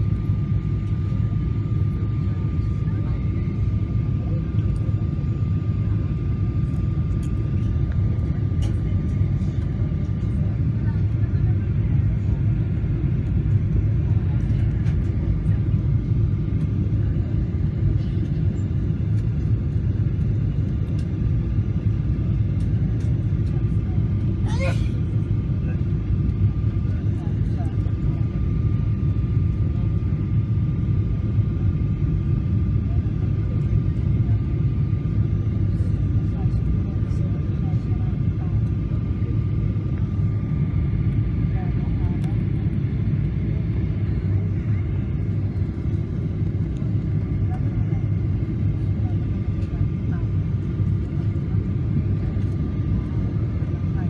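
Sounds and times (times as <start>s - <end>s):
jet engine and airflow rumble: 0.0s - 54.0s.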